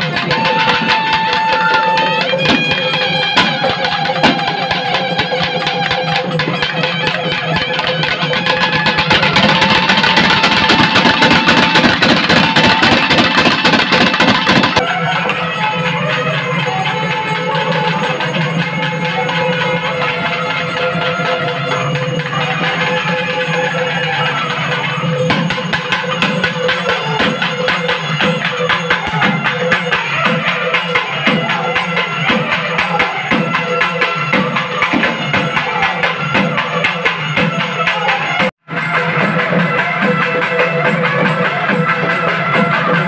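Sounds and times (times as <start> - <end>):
reed pipe melody: 0.0 - 42.2
fast drumming: 0.0 - 43.0.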